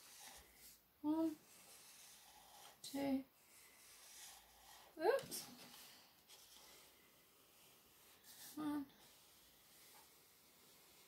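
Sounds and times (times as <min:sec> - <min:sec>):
marker scratching on paper: 0:00.0 - 0:11.0.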